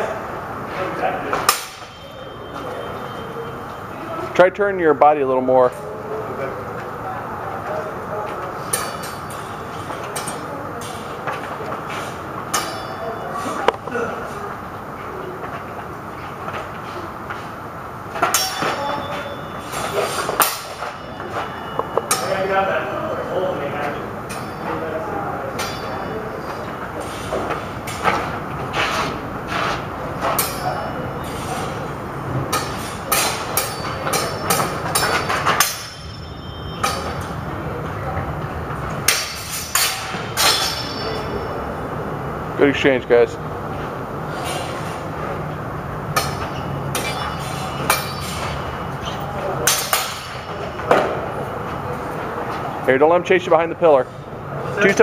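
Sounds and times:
faint voices: 0.0 - 17.8, 18.5 - 55.0
swords clashing: 1.5 - 2.0, 12.5 - 13.0, 18.2 - 19.1, 19.7 - 21.0, 25.6 - 26.1, 32.5 - 36.2, 39.1 - 41.4, 46.2 - 50.6.

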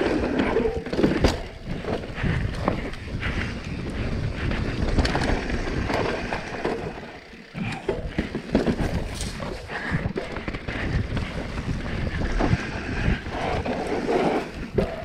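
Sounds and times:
bike rattling and knocking: 0.0 - 15.0
bike tyres rolling on dirt: 0.0 - 15.0
wind on microphone: 9.2 - 15.0.

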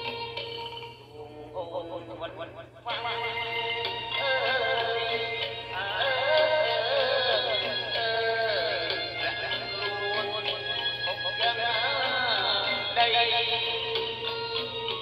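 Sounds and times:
person singing ornamented melody: 0.0 - 15.0.

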